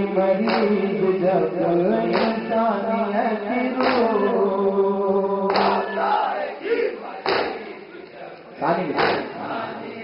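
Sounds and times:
man singing through loudspeakers: 0:00.0 - 0:06.6, 0:08.5 - 0:10.0
loud chest slaps: 0:07.2 - 0:07.6.

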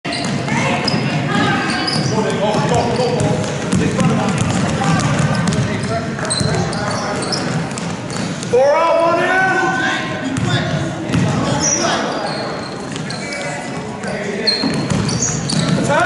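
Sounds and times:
spectators' voices and shouts: 0:00.1 - 0:16.0
basketball bouncing on wood floor: 0:00.2 - 0:08.5, 0:10.4 - 0:11.4, 0:14.6 - 0:15.9.

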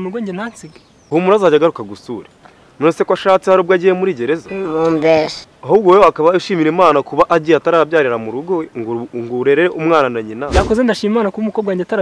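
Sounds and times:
man talking: 0:05.6 - 0:12.0
brief low thud: 0:10.5 - 0:10.8.

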